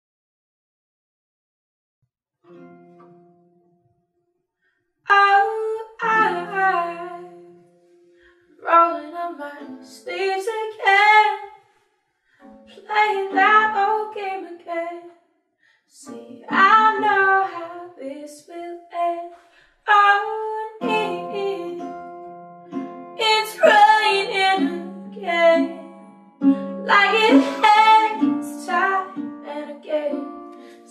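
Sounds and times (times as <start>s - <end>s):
woman singing: 5.1s - 7.4s, 8.6s - 11.5s, 12.7s - 15.1s, 16.0s - 22.0s, 23.2s - 26.1s, 26.8s - 30.9s
acoustic guitar chords: 21.8s - 29.4s
acoustic guitar picking: 26.5s - 29.2s.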